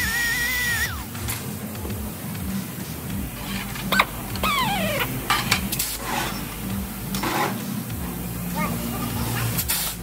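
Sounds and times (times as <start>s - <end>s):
low workshop hum: 0.0s - 10.0s.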